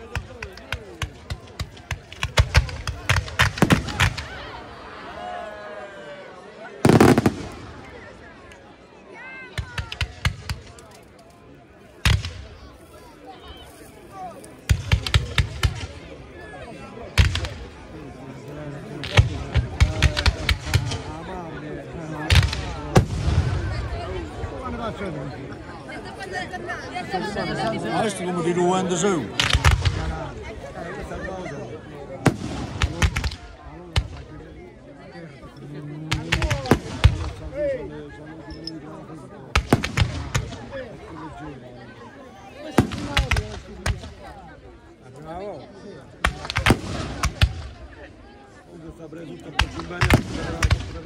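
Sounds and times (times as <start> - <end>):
crowd chatter: 0.0 - 51.0
fireworks bangs: 0.1 - 4.3, 6.8 - 8.0, 22.3 - 23.9, 32.2 - 34.3, 36.1 - 37.4, 39.5 - 40.8, 46.2 - 47.9, 49.5 - 51.0.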